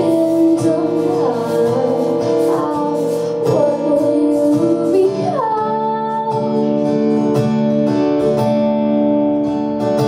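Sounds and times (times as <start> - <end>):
woman singing: 0.0 - 7.2
strummed acoustic guitar: 0.0 - 10.0.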